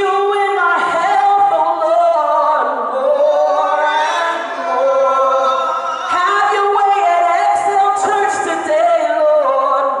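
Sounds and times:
women singing gospel song: 0.0 - 10.0.

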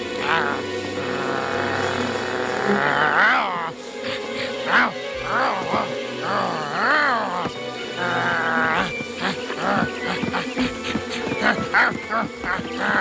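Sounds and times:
dramatic background music: 0.0 - 13.0
cartoon wolves snarling and yelping: 0.1 - 3.8, 4.4 - 10.7, 11.4 - 13.0.

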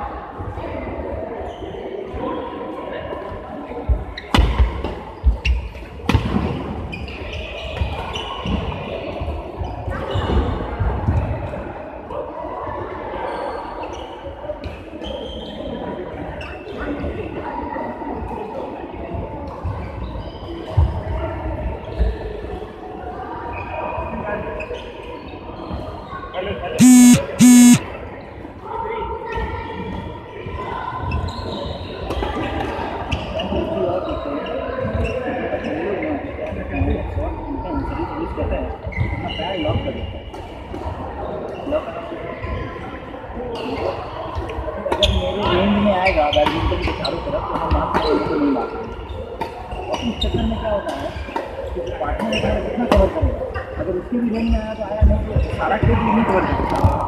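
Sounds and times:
loud short beeps: 26.8 - 27.8.

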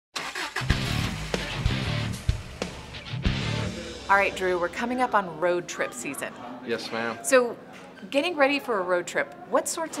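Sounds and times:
car engine revving: 0.2 - 4.0
upbeat music with drums and bass: 0.6 - 5.0.

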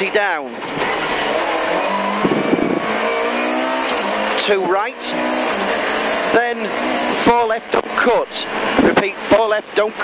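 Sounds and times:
car engine from inside cabin: 0.5 - 10.0.

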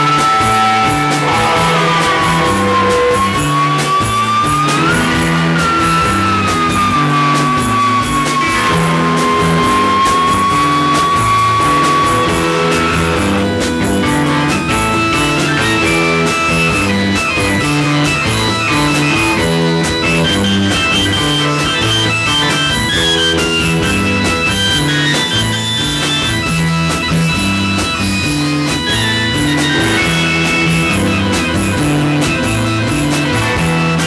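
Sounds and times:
bass line: 0.0 - 34.0
drums with cymbal hits: 0.0 - 34.0
electric guitar: 0.0 - 34.0.

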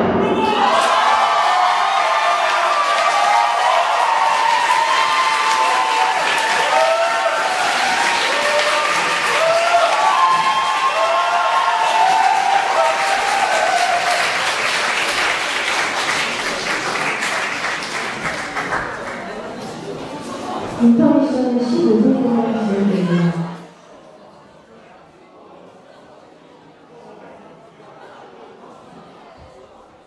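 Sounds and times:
people cheering: 0.0 - 19.1
audience applauding: 0.6 - 19.9.

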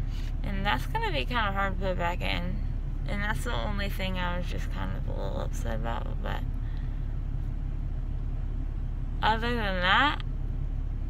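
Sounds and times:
low rumble inside car cabin: 0.0 - 11.0.

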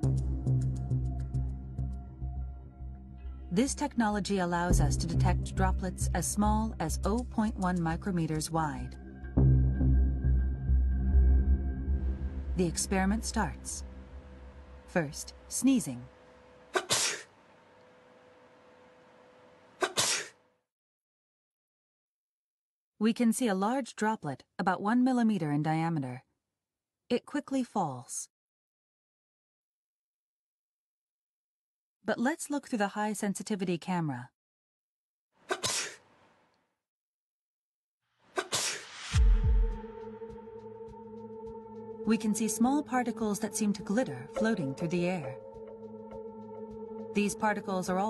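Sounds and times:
man sneezing: 16.7 - 17.3, 19.8 - 20.4, 35.5 - 36.0, 38.4 - 38.8
deep boom: 39.2 - 39.9
held music drone: 39.7 - 48.0.

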